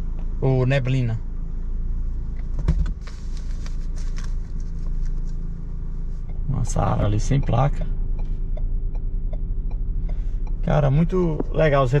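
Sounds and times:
pickup engine idling: 0.0s - 12.0s.

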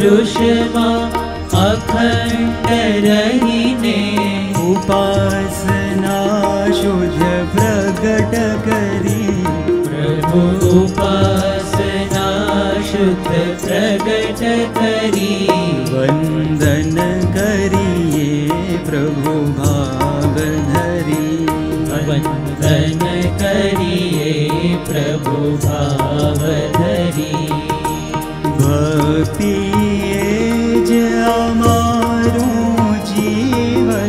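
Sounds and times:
harmonium: 0.0s - 34.0s
man singing: 0.0s - 34.0s.

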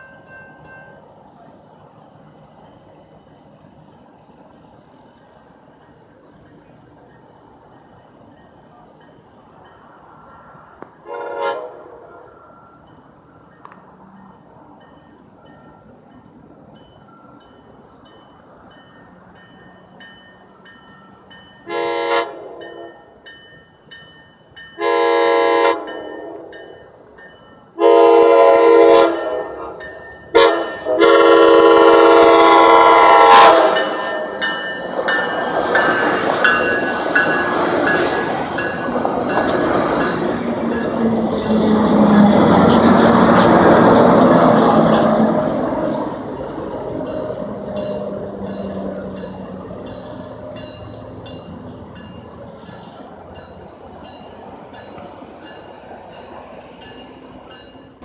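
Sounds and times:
crossing signal bells: 0.0s - 10.8s, 11.4s - 42.8s, 43.6s - 58.0s
train horn blasts: 11.0s - 12.2s, 21.6s - 23.1s, 24.8s - 26.7s, 27.8s - 34.3s
train wheels clattering on rail: 29.0s - 58.0s.

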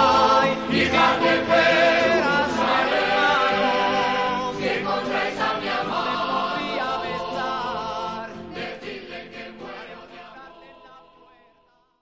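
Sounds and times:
choir singing a chant: 0.0s - 11.9s.

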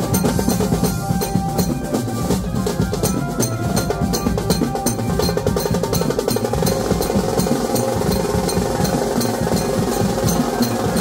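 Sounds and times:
banjo street band playing: 0.0s - 11.0s
marching drums beating: 0.0s - 11.0s.

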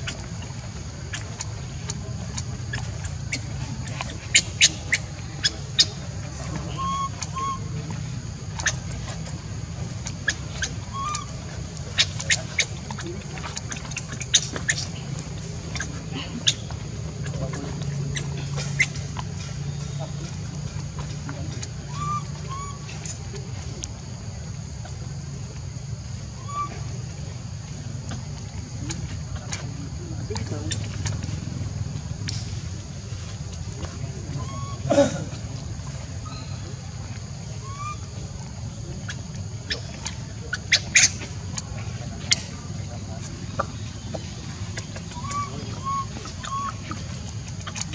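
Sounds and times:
low steady rumble: 0.0s - 47.9s
steady low hum: 0.0s - 47.9s
baby monkey squeaking: 6.8s - 7.6s, 10.3s - 11.3s, 21.9s - 23.2s, 45.1s - 46.8s.

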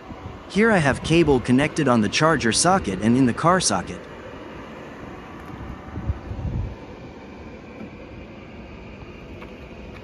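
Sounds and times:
outdoor low rumble: 0.0s - 10.0s.

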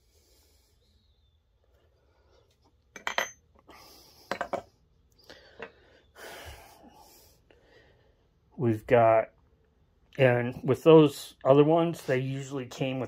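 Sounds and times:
metal shafts clinking: 2.9s - 3.5s.

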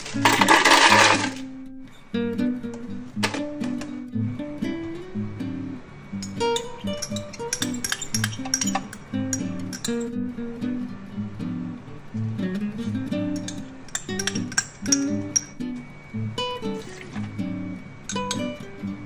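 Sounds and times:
ice rattling in plastic blender jar: 0.0s - 1.4s
strawberries clinking on ice: 0.0s - 1.4s, 6.2s - 10.0s, 13.4s - 15.6s
acoustic guitar music: 0.0s - 19.0s.

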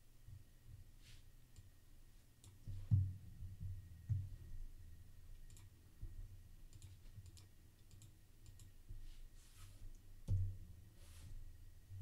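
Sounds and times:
soft low thumps: 2.6s - 4.8s
computer mouse and keyboard clicks: 5.5s - 5.7s, 6.7s - 8.8s.

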